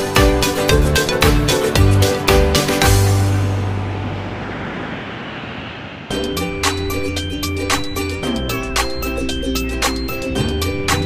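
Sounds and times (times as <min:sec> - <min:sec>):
ocean surf: 0:01.6 - 0:10.0
wind on microphone: 0:02.9 - 0:08.3.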